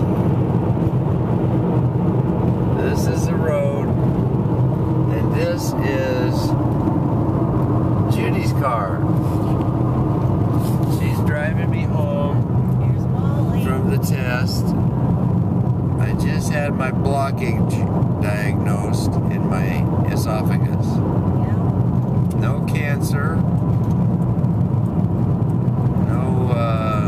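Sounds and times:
car cabin road rumble: 0.0 - 27.0.

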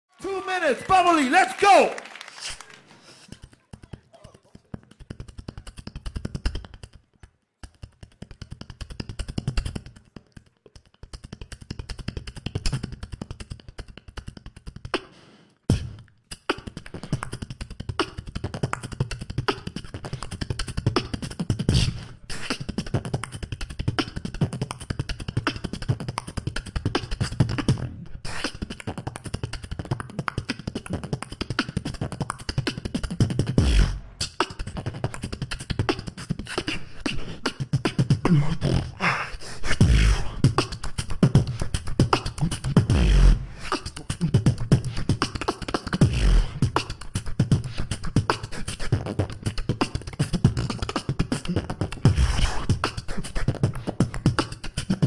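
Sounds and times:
person beatboxing into a microphone: 2.4 - 55.0.

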